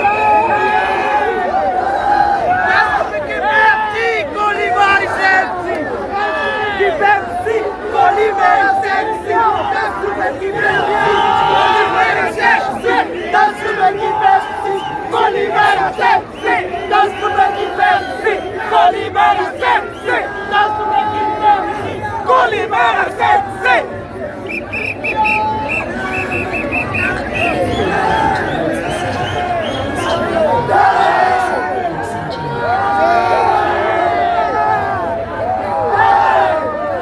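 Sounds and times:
crowd shouting and cheering: 0.0s - 37.0s.

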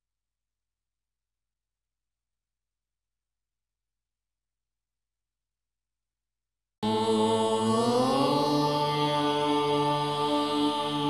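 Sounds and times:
devotional chant-like music: 6.8s - 11.0s.

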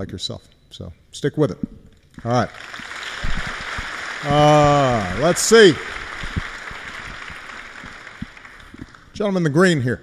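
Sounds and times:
audience applause: 2.4s - 9.1s.

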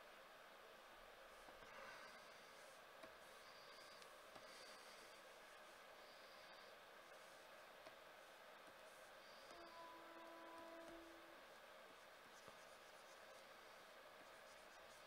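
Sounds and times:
faint steady tone: 0.0s - 15.0s
stylus scratching and tapping tablet: 2.1s - 15.0s.

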